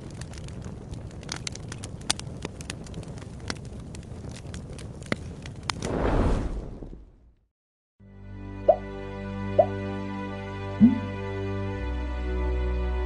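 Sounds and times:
fire crackling and popping: 0.0s - 7.4s
fire rumbling: 0.0s - 7.5s.

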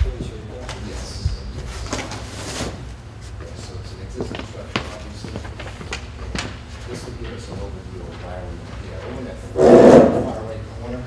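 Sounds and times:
loud noise near microphone: 9.3s - 11.0s.

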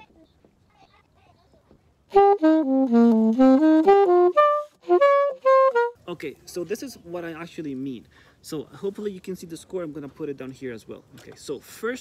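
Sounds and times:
saxophone melody: 2.1s - 6.0s.

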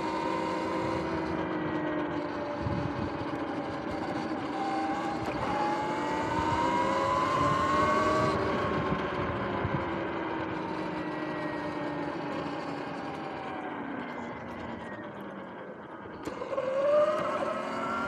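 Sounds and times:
electric motor whining: 0.0s - 18.0s
wind noise: 2.6s - 3.2s, 6.2s - 9.9s.

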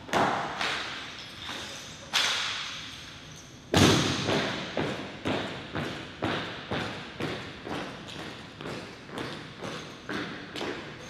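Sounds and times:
heavy echoing thud: 3.7s - 5.4s.

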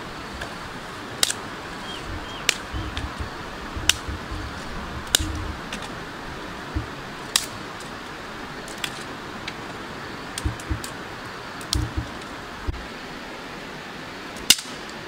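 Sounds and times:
steady hiss: 0.0s - 15.0s
soft low thumps: 2.0s - 5.7s, 6.7s - 7.1s, 10.4s - 10.9s, 11.8s - 12.2s.

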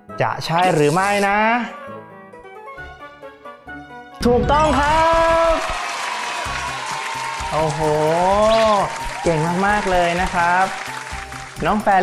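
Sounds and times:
background music: 0.0s - 12.0s
man speaking: 0.2s - 1.7s, 4.2s - 5.7s
applause: 4.6s - 12.0s.

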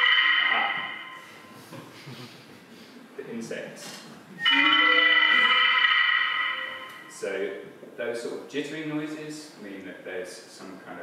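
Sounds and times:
sustained bright electronic note: 0.0s - 1.6s, 4.4s - 7.2s.

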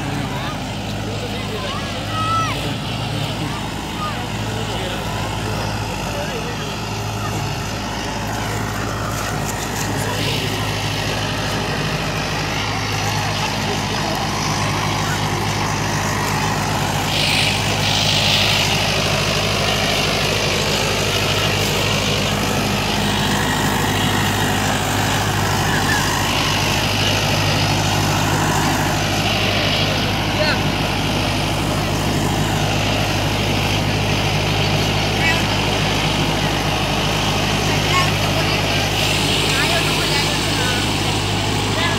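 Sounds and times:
cultivator pulled through soil: 0.0s - 41.9s
tractor diesel engine running: 0.0s - 41.9s
voices of onlookers: 0.0s - 41.9s.

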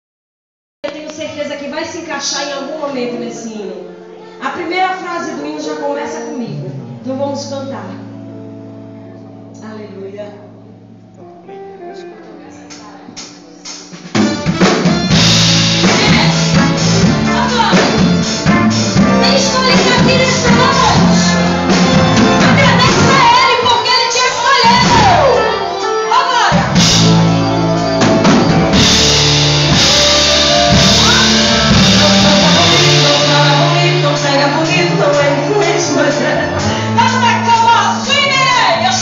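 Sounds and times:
gospel band playing loud: 0.9s - 9.6s, 10.4s - 39.0s
soft guitar and keyboard notes: 2.0s - 39.0s
drum and cymbal hits: 12.7s - 23.6s, 26.5s - 38.4s.

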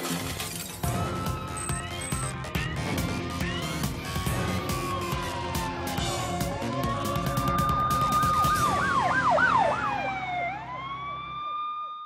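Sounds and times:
police siren wailing and yelping: 0.8s - 12.0s.

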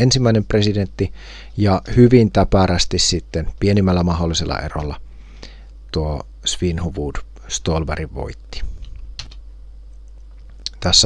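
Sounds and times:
low steady hum: 0.0s - 11.0s
computer keyboard clicks: 9.2s - 9.4s.

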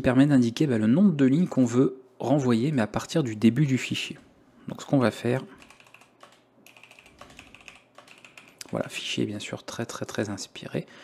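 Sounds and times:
keyboard typing: 5.6s - 8.9s.

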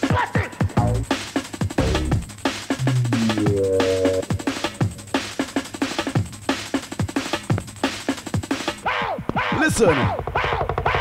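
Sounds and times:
drum and bass track: 0.0s - 8.8s
fast breakbeat drums: 0.0s - 11.0s
deep sliding bass notes: 2.8s - 4.7s.

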